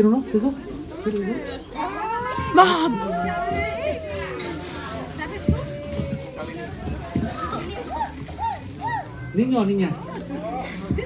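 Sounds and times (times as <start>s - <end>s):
background chatter: 0.0s - 11.0s
children shouting: 1.7s - 9.5s.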